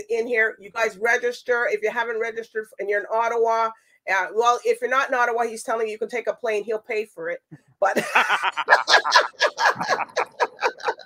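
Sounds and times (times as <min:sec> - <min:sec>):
woman and man laughing: 0:08.0 - 0:11.0.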